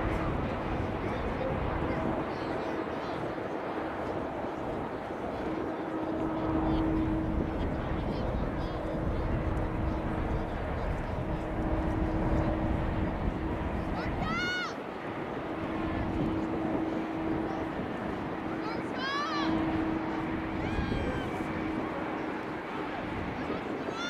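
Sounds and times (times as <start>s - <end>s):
steady low hum: 0.0s - 24.0s
wind rumble on microphone: 0.0s - 24.0s.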